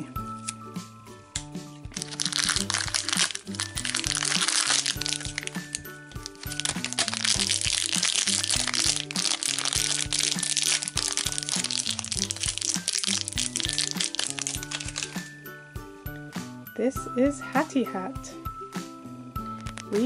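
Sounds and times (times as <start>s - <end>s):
children's background music: 0.0s - 20.0s
wrapper crinkling: 1.9s - 15.4s, 19.5s - 20.0s.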